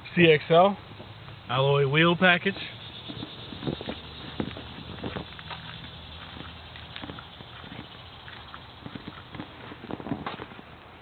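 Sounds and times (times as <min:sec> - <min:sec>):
outdoor background hum: 0:00.0 - 0:11.0
footsteps on pavement: 0:00.9 - 0:01.4, 0:02.4 - 0:10.9.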